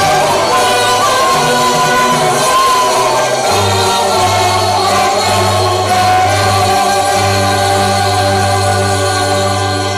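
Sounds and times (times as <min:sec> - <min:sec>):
film song over loudspeakers: 0:00.0 - 0:09.9.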